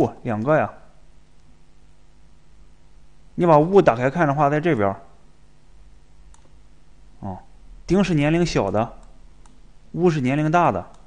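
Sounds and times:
low room hum: 0.0s - 11.0s
faint click: 6.3s - 6.6s, 9.0s - 9.6s.

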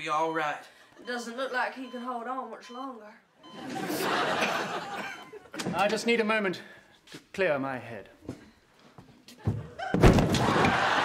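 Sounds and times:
audience laughing: 3.6s - 5.7s, 10.4s - 11.0s.

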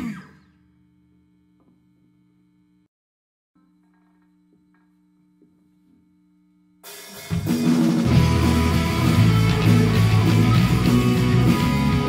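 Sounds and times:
amplifier electrical hum: 0.3s - 2.9s, 3.6s - 6.8s
rock band final chord: 7.2s - 12.0s.

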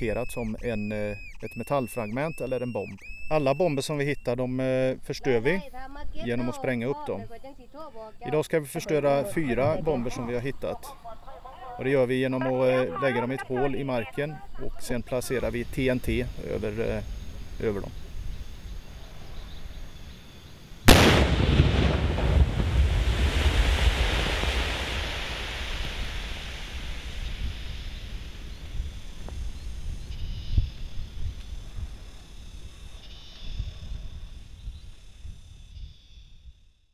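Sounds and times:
explosion boom: 20.9s - 29.2s.

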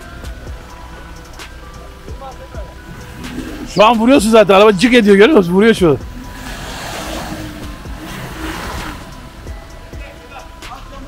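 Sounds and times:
truck engine running under load: 0.0s - 11.0s
rushing noise: 2.9s - 10.0s.

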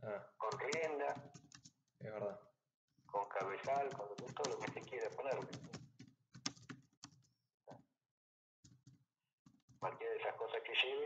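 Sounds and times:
person speaking: 0.0s - 1.4s, 3.1s - 5.8s, 9.8s - 11.0s
keyboard typing: 0.4s - 1.7s, 3.2s - 7.3s.

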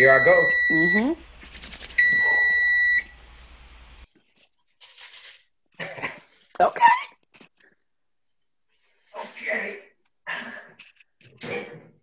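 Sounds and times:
high-pitched oven beep: 0.0s - 1.2s, 2.0s - 3.2s.

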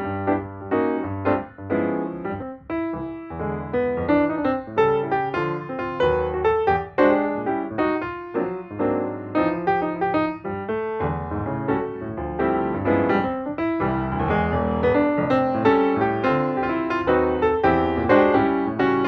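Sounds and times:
piano chords and melody: 0.0s - 19.0s.

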